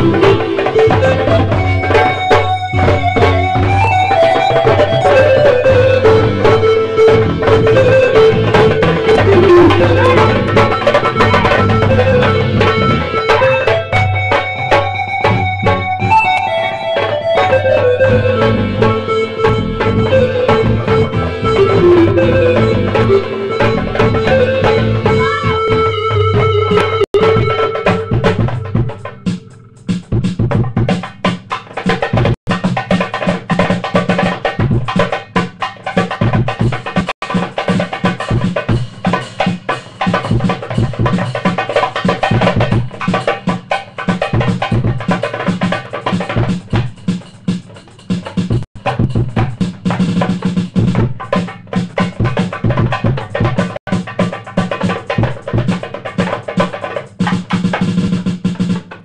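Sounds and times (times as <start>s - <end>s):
band playing music: 0.0s - 31.1s
drum kit steady beat: 0.0s - 59.0s.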